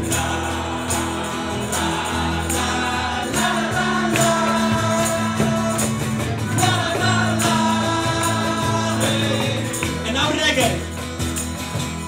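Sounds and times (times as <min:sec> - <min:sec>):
group of voices singing: 0:00.0 - 0:10.1
acoustic guitars playing: 0:00.0 - 0:12.0.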